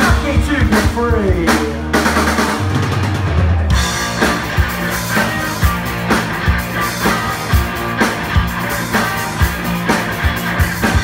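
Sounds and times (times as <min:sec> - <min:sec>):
bass guitar: 0:00.0 - 0:11.0
electric guitars: 0:00.0 - 0:11.0.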